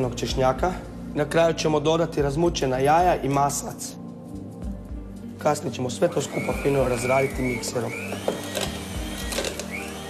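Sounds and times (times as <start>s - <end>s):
background music: 0.0s - 10.0s
electric mixer motor running: 6.1s - 10.0s.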